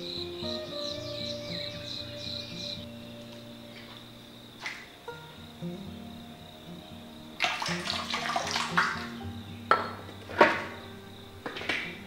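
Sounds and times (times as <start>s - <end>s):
soft background music: 0.0s - 12.0s
sharp plop in water: 7.4s - 9.1s
ginger slices splashing into water: 7.4s - 9.2s.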